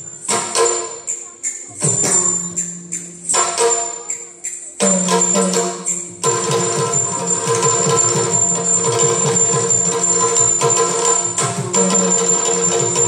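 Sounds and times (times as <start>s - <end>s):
small cymbals jingling: 0.0s - 13.0s
fast drum strokes: 4.9s - 13.0s.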